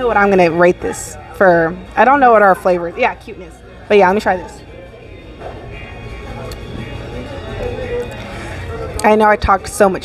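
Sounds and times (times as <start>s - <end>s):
faint chatter of diners: 0.0s - 10.0s
restaurant music: 0.0s - 10.0s.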